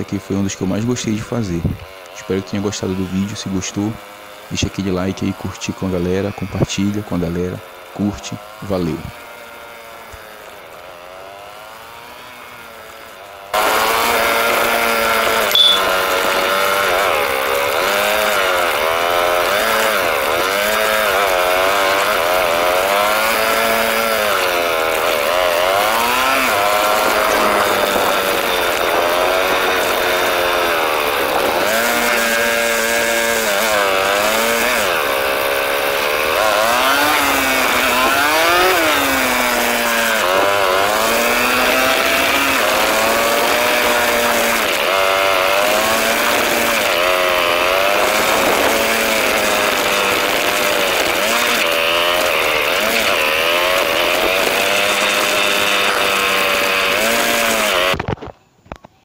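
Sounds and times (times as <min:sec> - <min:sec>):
small gasoline engine revving: 0:00.0 - 0:58.2.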